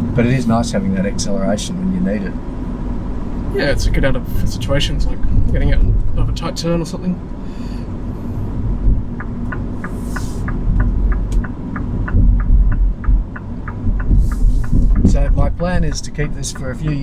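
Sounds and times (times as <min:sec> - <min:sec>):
road and tyre noise: 0:00.0 - 0:17.0
turn-signal indicator ticking: 0:08.4 - 0:17.0.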